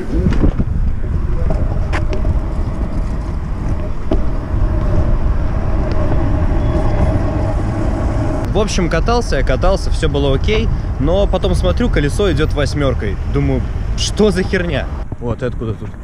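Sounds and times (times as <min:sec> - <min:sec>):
scooter jolting over bumps: 0:00.0 - 0:08.0
scooter wheels rumbling on asphalt: 0:00.0 - 0:16.0
wind buffeting microphone: 0:00.0 - 0:16.0.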